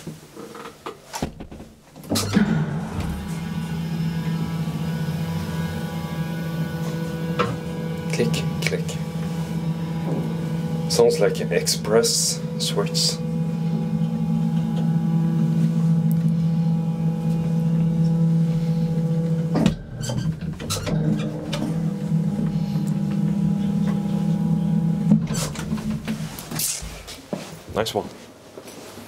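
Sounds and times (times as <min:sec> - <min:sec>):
elevator click: 0:02.0 - 0:11.1, 0:17.2 - 0:26.2
elevator machine hum: 0:02.0 - 0:26.8.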